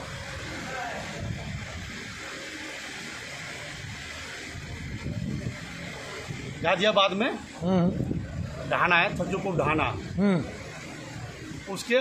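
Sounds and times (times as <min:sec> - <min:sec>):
crowd hubbub in a hall: 0:00.0 - 0:12.0.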